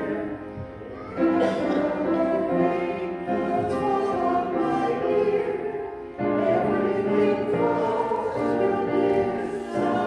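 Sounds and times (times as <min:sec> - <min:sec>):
woman singing a hymn: 0:01.4 - 0:10.0.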